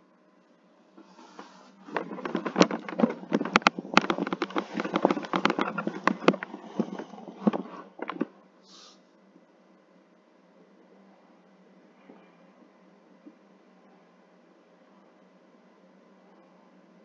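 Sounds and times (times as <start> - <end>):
headset microphone handling noise: 1.0 - 8.3
rapid clicks and knocks: 1.0 - 8.4.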